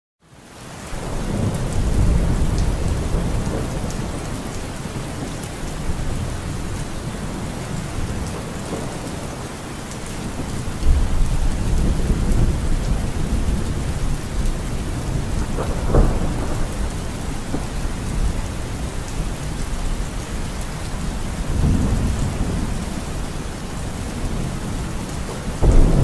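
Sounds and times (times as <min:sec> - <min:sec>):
steady rain: 0:00.2 - 0:26.0
low rolling thunder: 0:01.0 - 0:09.5, 0:10.2 - 0:26.0.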